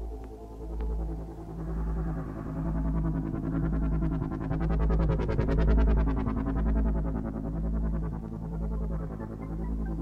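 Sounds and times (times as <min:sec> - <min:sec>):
pulsing synth line: 0:00.9 - 0:10.0.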